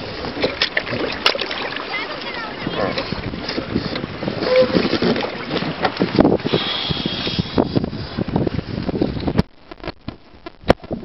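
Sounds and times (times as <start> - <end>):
seawater sloshing and splashing: 0.0 - 10.0
wind on microphone: 0.0 - 11.0.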